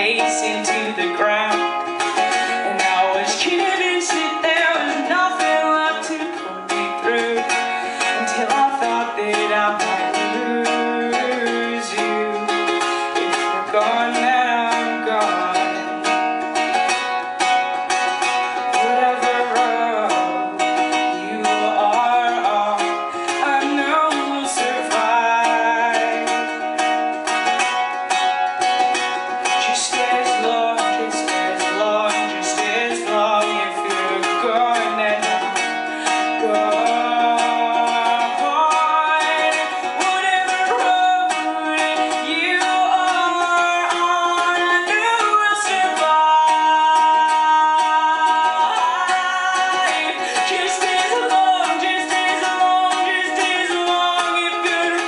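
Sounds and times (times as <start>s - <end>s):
ukulele strumming: 0.0s - 55.0s
woman singing: 0.0s - 55.0s.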